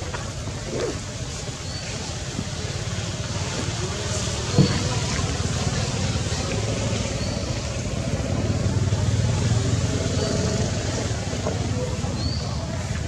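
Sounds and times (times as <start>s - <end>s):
faint distant voices: 0.0s - 13.0s
traffic engine rumble: 0.0s - 13.0s.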